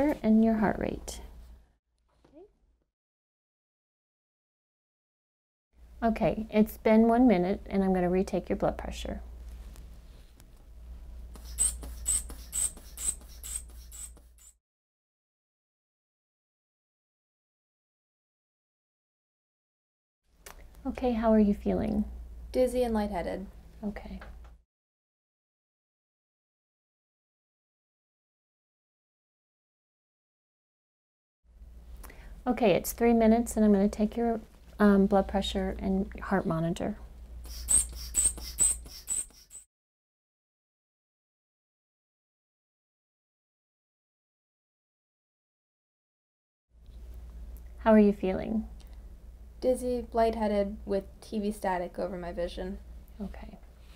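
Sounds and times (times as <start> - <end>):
inflation bulb squeaking: 11.4 - 14.6, 37.5 - 39.7
squeaky hand bulb puffs: 37.5 - 39.6.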